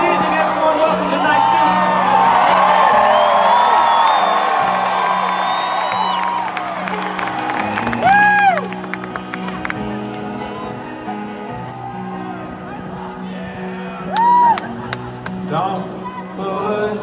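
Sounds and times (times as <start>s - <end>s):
crowd cheering and whooping: 0.0s - 9.5s, 10.3s - 15.3s
loud close whoop: 14.1s - 14.7s.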